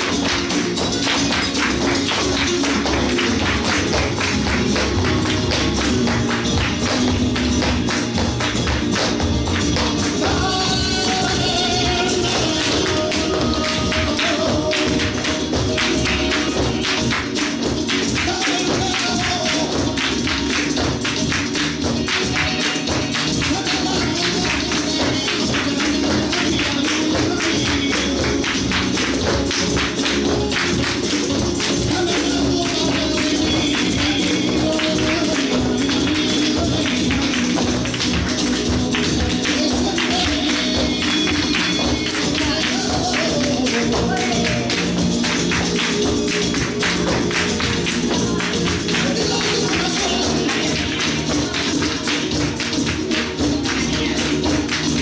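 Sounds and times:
flamenco music: 0.0s - 55.0s.

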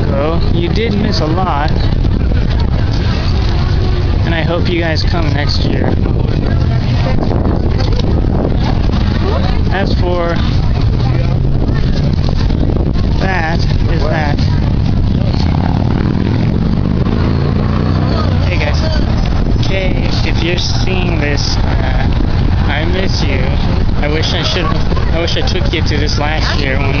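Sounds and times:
low traffic rumble: 0.0s - 27.0s
people's voices: 0.0s - 27.0s
vehicle speeding up past: 14.5s - 20.8s.

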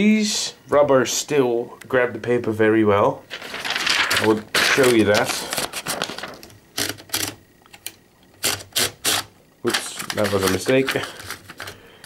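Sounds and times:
typewriter roller clicking: 3.5s - 7.4s, 8.4s - 11.8s.

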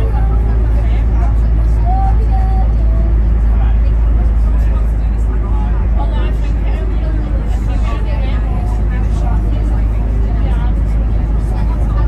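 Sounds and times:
indistinct voices: 0.0s - 12.0s
vehicle rumble in tunnel: 0.0s - 12.0s.

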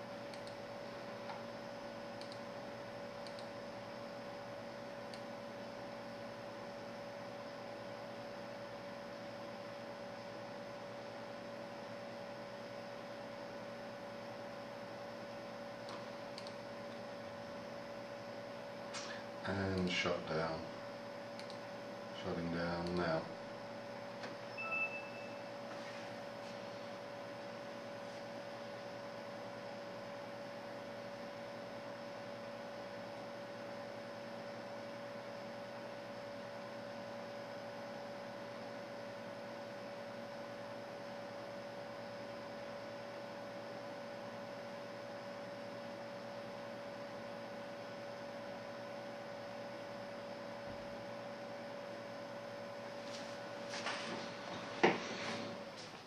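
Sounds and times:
desktop computer humming: 0.0s - 56.0s
faint clicks: 2.2s - 2.4s.

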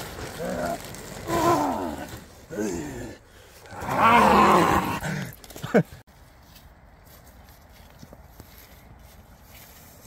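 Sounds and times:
man growling: 0.4s - 5.3s.

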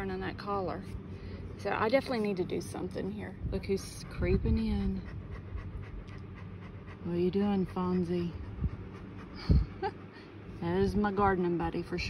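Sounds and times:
dog panting: 1.8s - 11.8s.

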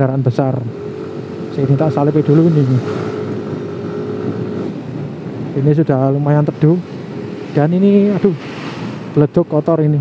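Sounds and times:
motorcycle engine hum: 0.0s - 9.2s
wind rush on microphone: 1.2s - 10.0s.

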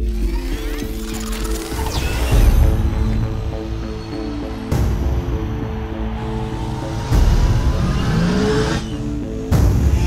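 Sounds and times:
synth score: 0.0s - 10.0s.

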